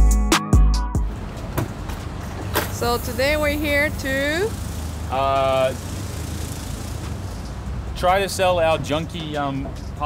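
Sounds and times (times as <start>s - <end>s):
outdoor traffic noise: 0.9s - 10.0s.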